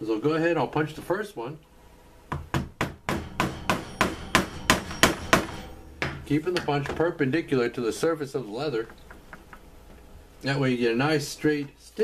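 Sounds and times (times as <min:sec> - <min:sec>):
mallet striking leather punch: 0:02.3 - 0:06.3.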